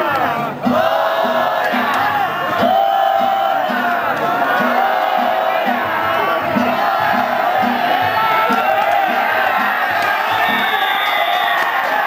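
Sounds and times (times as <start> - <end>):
crowd shouting and cheering: 0.0 - 12.0
festival percussion beat: 0.0 - 12.0.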